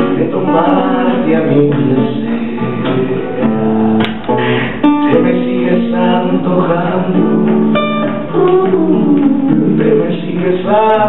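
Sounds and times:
man singing: 0.0s - 3.7s, 4.4s - 11.0s
acoustic guitar: 0.0s - 11.0s.

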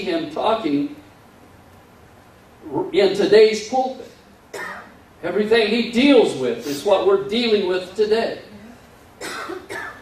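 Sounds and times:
faint room hiss: 0.0s - 10.0s
man speaking: 2.6s - 4.2s, 5.2s - 8.6s.

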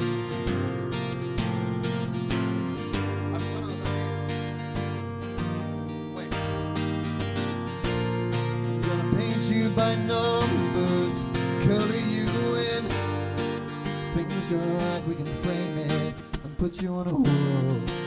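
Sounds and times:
acoustic guitar strumming: 0.0s - 18.0s.

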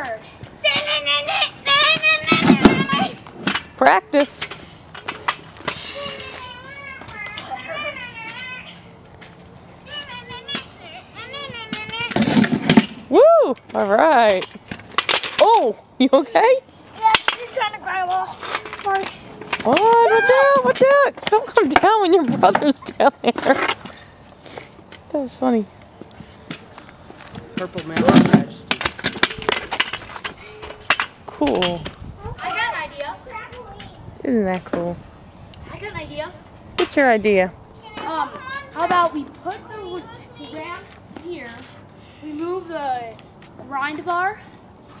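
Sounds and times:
scooter clicks and knocks on concrete: 0.6s - 8.6s, 9.9s - 15.8s, 16.4s - 24.0s, 26.4s - 35.0s, 37.9s - 41.6s.

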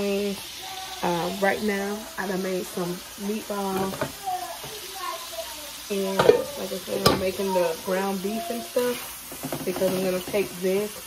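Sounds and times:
meat sizzling in a skillet: 0.0s - 11.0s.

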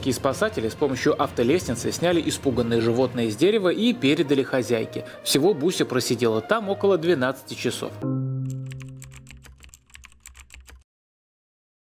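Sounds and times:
held music chord: 4.0s - 9.4s
rapid keyboard typing: 8.5s - 10.9s.

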